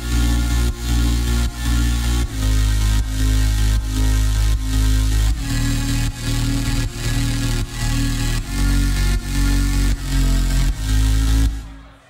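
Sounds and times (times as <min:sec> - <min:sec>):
deep bass line: 0:00.0 - 0:12.0
layered vocal loops: 0:00.0 - 0:12.0.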